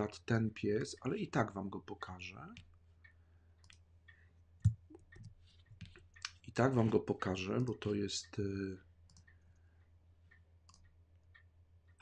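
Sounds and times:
computer mouse clicks: 3.6s - 3.8s, 4.6s - 6.4s, 9.1s - 9.4s, 10.3s - 12.0s.

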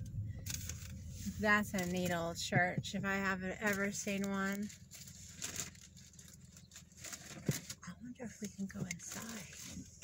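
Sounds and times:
car cabin low rumble: 0.0s - 10.0s.

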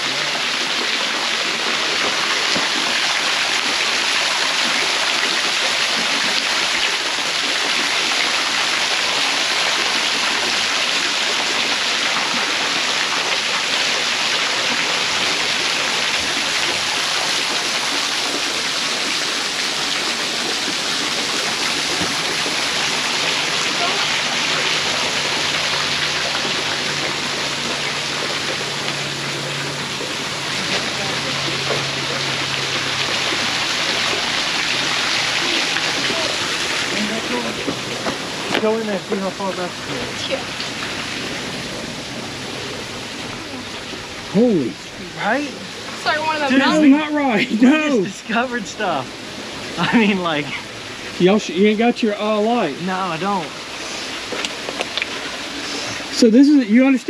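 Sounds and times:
water rushing down a channel: 0.0s - 57.0s.

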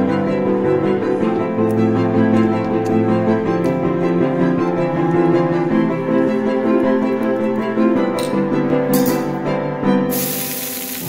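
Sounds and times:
background music with strings and piano: 0.0s - 11.0s
water sizzling on hot griddle: 10.1s - 11.0s.

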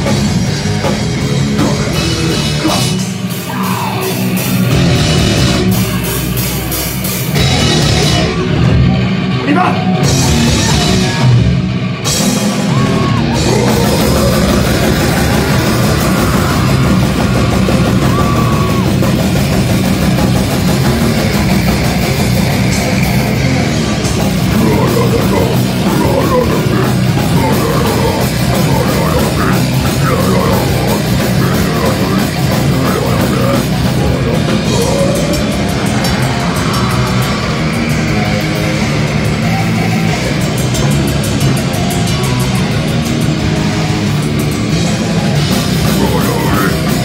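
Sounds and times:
bass guitar: 0.0s - 47.0s
distorted electric guitars: 0.0s - 47.0s
drum kit cymbals and snare: 0.0s - 47.0s
live metal band playing: 0.0s - 47.0s.

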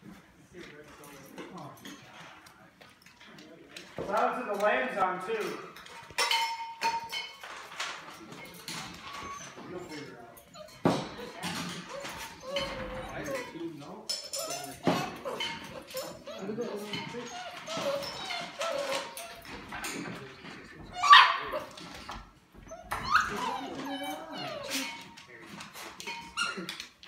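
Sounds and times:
puppies whining: 5.8s - 27.0s
puppy yelping: 8.6s - 13.6s, 14.7s - 19.6s, 20.8s - 25.0s.

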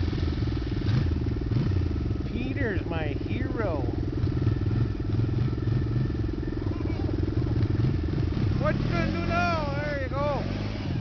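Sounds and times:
atv engine running: 0.0s - 11.0s
person calling out: 8.8s - 10.4s.

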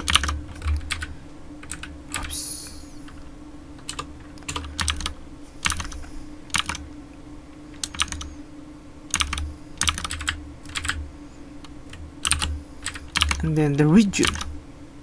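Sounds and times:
computer keyboard clicks: 0.0s - 2.3s, 3.8s - 5.9s, 6.5s - 6.8s, 7.8s - 8.3s, 9.1s - 11.0s, 12.2s - 13.4s, 14.2s - 14.5s
low steady hum: 0.0s - 15.0s.

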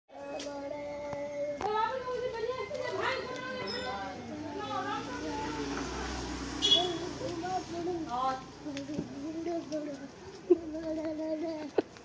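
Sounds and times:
young children chattering: 0.2s - 12.0s
child calling: 8.8s - 11.8s.

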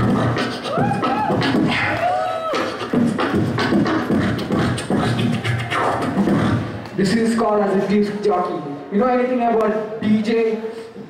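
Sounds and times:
person beatboxing into microphone: 0.0s - 8.2s.

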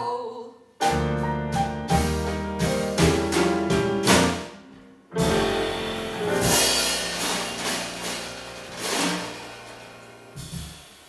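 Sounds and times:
piano bass and drums trio: 0.8s - 11.0s
cymbal crash: 5.2s - 11.0s.

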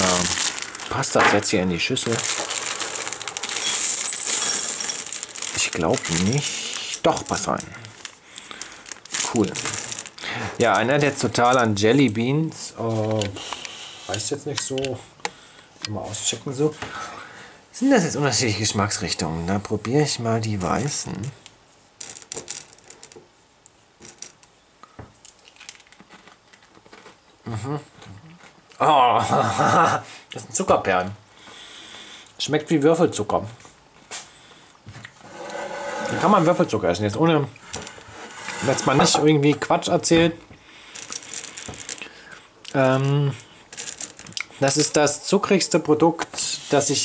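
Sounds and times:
candy clattering into glass bowl: 0.0s - 7.7s, 42.7s - 44.9s
candy eggs clicking together: 2.1s - 11.7s, 40.8s - 45.0s.

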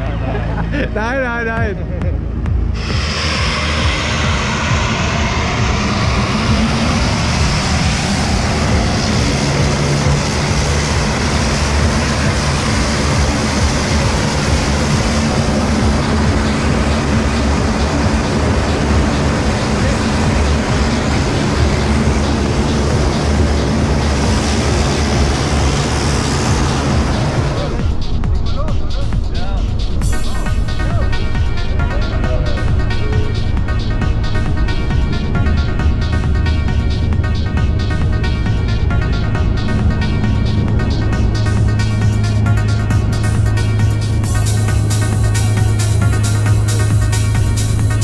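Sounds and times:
low hum: 0.0s - 48.0s
turboprop plane engine running: 0.0s - 48.0s.

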